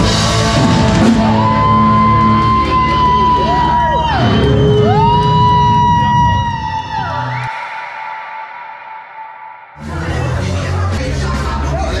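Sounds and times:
electric guitars sustained notes: 0.0 - 7.6.

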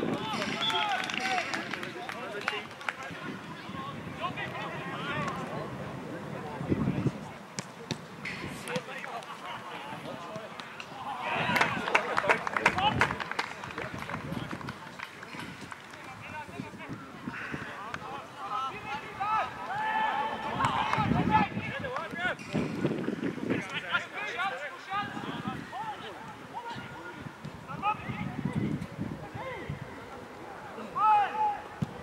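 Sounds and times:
people shouting calls: 18.4 - 21.6, 30.8 - 31.8.

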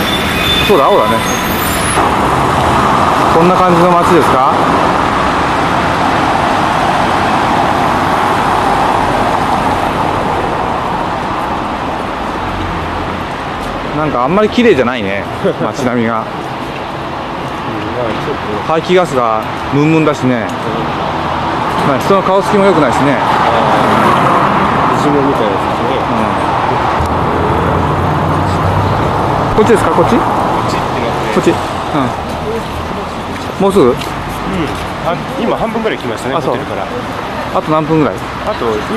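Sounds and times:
car engines: 0.0 - 38.9
city street traffic: 0.0 - 38.9
tyres on road: 0.0 - 38.9
car passing close by: 20.7 - 35.4.

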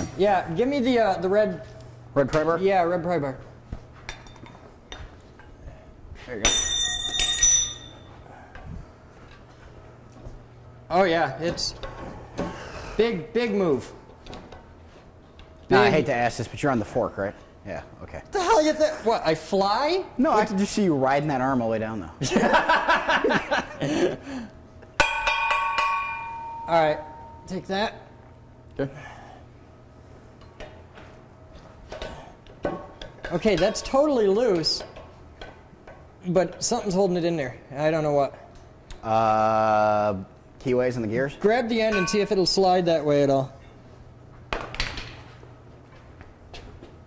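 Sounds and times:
steel tools clanking on metal: 4.1 - 5.0, 6.4 - 8.1, 41.8 - 42.6
metal tools knocking on steel: 6.4 - 8.1, 25.0 - 27.5, 41.9 - 42.5.

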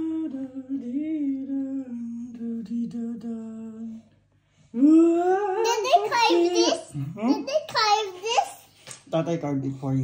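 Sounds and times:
person humming: 4.8 - 5.8.

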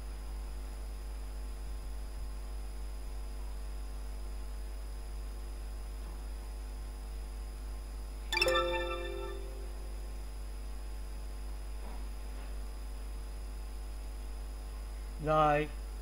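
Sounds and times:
mains hum with hiss: 0.0 - 16.0.

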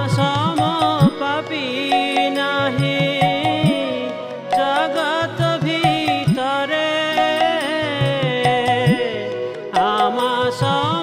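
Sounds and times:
harmonium melody: 0.0 - 11.0.

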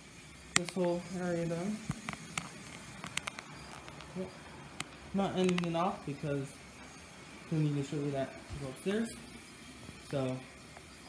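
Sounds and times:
light sharp clicks and taps: 0.5 - 1.0, 1.8 - 4.1, 4.8 - 5.8.

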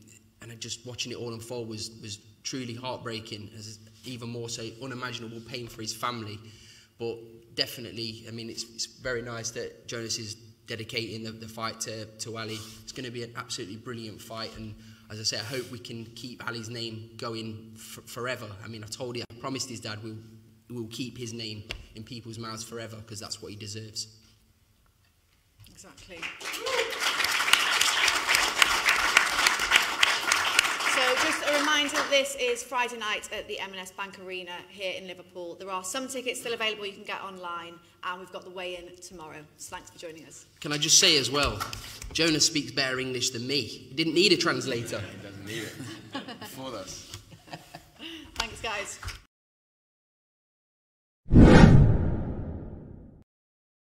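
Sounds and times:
audience applauding: 26.2 - 32.1
whoosh with heavy low end: 51.3 - 53.2.

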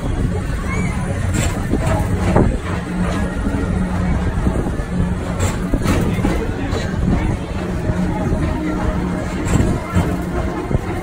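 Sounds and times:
ride car rumbling on track: 0.0 - 11.0.

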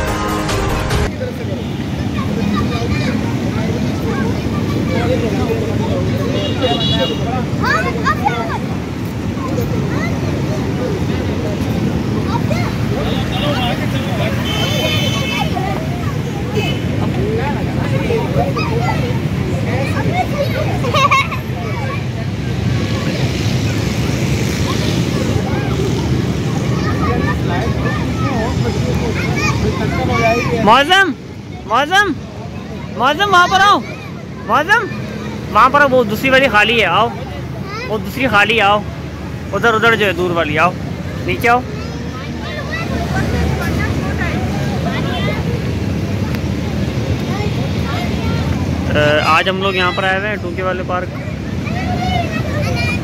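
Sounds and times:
children calling and chattering: 0.0 - 53.0.

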